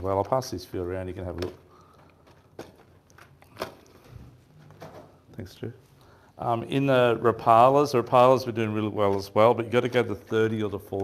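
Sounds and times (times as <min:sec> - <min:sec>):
plastic packets clicking and crinkling: 0:00.0 - 0:05.3.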